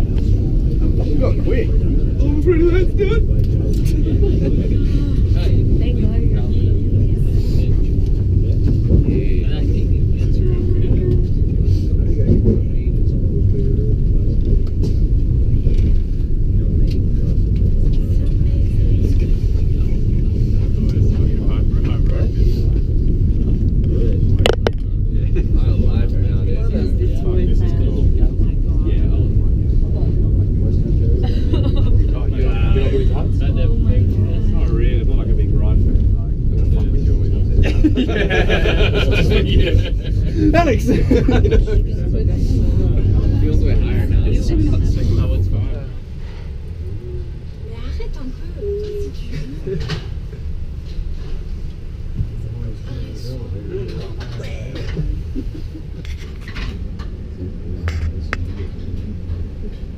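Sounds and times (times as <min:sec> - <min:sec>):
lift cabin rumbling: 0:00.0 - 0:59.9.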